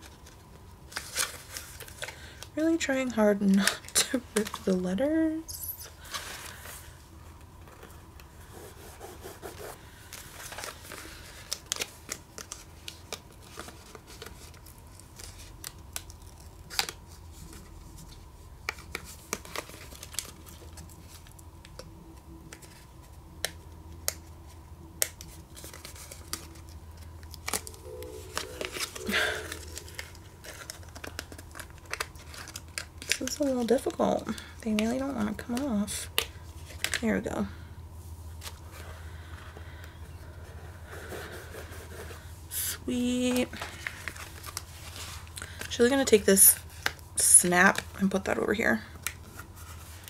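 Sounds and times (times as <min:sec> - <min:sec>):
faint steady hum: 0:00.0 - 0:50.0
paper stickers peeling and rustling: 0:08.9 - 0:21.9, 0:25.0 - 0:34.1.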